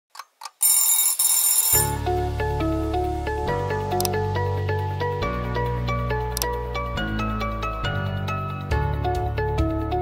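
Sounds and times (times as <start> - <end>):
alarm clock bell ringing: 0.6 - 2.0
music jingle: 0.6 - 2.6.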